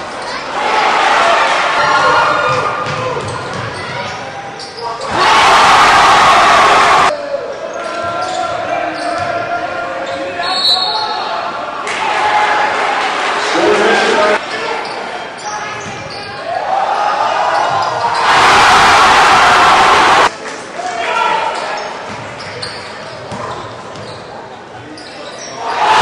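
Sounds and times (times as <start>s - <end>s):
loud burst of crowd noise: 5.1s - 7.1s, 11.5s - 14.5s, 16.6s - 21.1s
crowd voices echoing: 10.9s - 15.4s.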